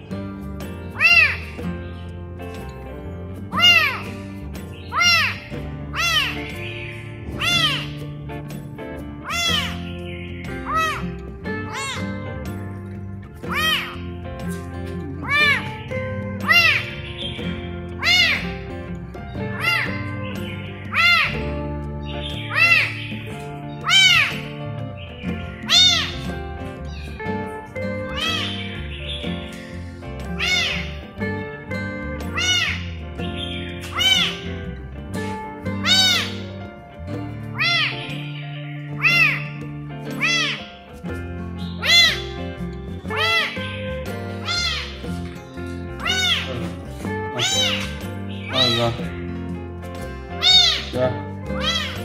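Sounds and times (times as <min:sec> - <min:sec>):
background music: 0:00.0 - 0:52.0
kitten meowing: 0:01.0 - 0:01.6, 0:03.5 - 0:04.1, 0:07.4 - 0:08.0, 0:09.2 - 0:09.9, 0:13.5 - 0:14.1, 0:15.2 - 0:15.8, 0:16.4 - 0:16.9, 0:18.0 - 0:18.6, 0:20.9 - 0:21.4, 0:22.4 - 0:23.0, 0:23.8 - 0:24.5, 0:25.7 - 0:26.3, 0:28.1 - 0:28.6, 0:30.4 - 0:31.0, 0:32.3 - 0:32.9, 0:33.9 - 0:34.6, 0:35.8 - 0:36.5, 0:37.5 - 0:40.8, 0:41.7 - 0:42.4, 0:43.1 - 0:43.8, 0:44.4 - 0:45.1, 0:46.0 - 0:49.1, 0:50.4 - 0:52.0.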